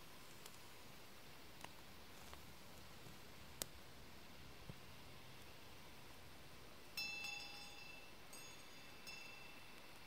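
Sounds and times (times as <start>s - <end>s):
small metal chime ringing: 7.0s - 10.0s.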